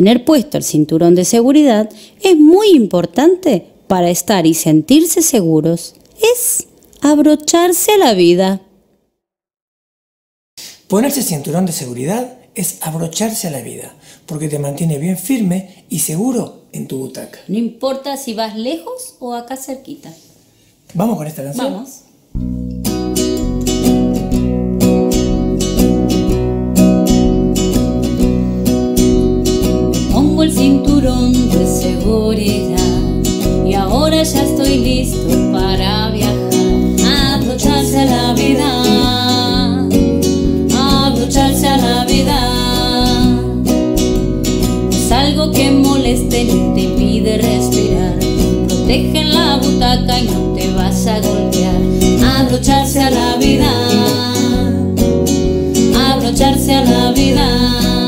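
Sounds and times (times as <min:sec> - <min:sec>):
acoustic guitar strumming: 0:22.3 - 0:58.0
woman singing: 0:30.1 - 0:43.7, 0:45.0 - 0:55.0, 0:55.8 - 0:58.0
man singing: 0:51.5 - 0:54.8.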